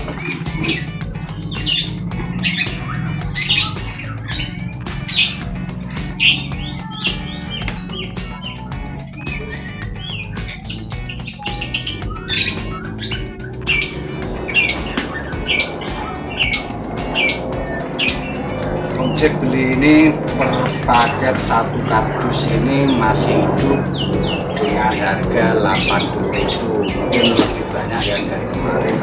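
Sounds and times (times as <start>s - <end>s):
bird calling sharply: 0.0s - 29.0s
low hum: 0.0s - 29.0s.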